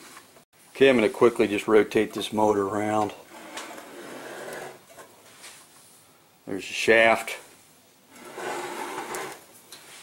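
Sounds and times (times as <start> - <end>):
engine scraping on workbench: 3.3 - 5.1, 8.1 - 9.5.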